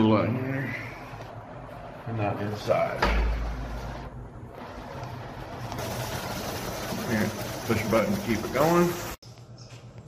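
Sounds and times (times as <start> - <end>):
shower spray hissing: 5.6 - 9.2.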